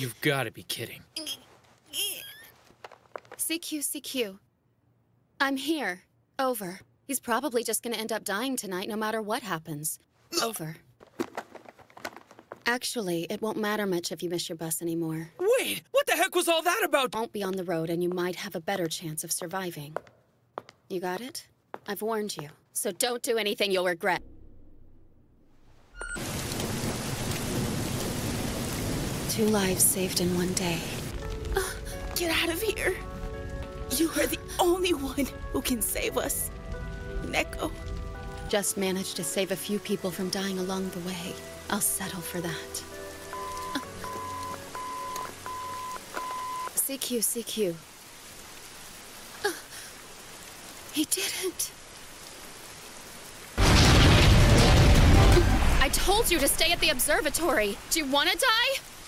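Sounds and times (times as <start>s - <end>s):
heavy rain falling: 26.0s - 59.0s
loud deep boom: 53.6s - 57.0s.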